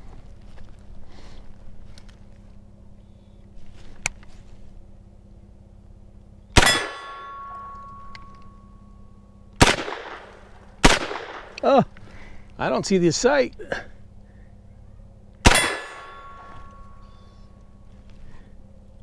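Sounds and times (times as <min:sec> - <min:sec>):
pistol gunshots: 0:06.6 - 0:07.2, 0:09.6 - 0:11.6, 0:15.4 - 0:16.4
steel target ringing: 0:06.6 - 0:10.3, 0:15.4 - 0:17.5.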